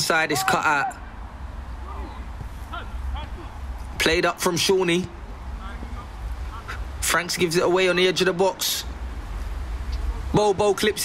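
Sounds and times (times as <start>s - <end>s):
distant calls from players: 0.0s - 11.0s.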